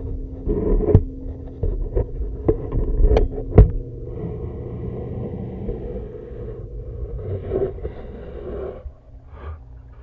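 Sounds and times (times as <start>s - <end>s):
muffled underwater hum: 0.0s - 10.0s.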